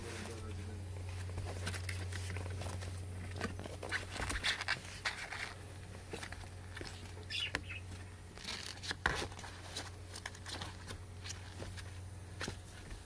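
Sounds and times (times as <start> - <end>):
steady low hum: 0.0 - 13.0
ferret scrabbling and rustling: 1.0 - 13.0.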